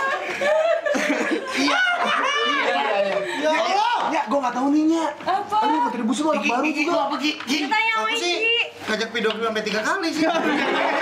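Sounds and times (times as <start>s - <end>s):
people laughing: 0.0s - 3.8s, 10.1s - 11.0s.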